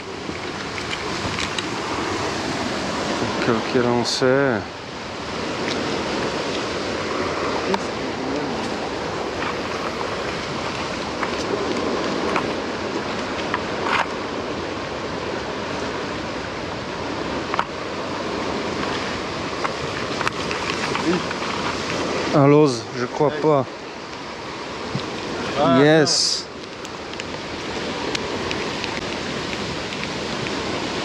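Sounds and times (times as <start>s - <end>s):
rushing water: 0.0s - 31.0s
wind: 0.0s - 31.0s.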